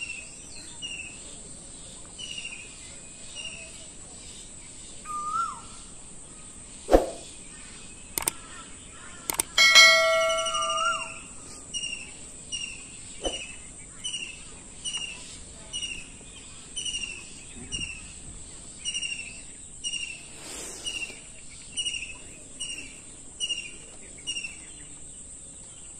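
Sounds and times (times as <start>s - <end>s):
bird chirping: 0.0s - 25.9s
mouse click sound effects: 8.2s - 8.4s, 9.3s - 11.1s
notification bell ding: 9.6s - 11.3s.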